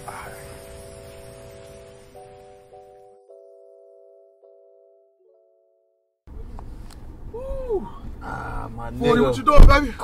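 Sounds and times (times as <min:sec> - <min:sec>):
soft keyboard chords: 0:00.0 - 0:06.4
low background rumble: 0:06.3 - 0:10.0.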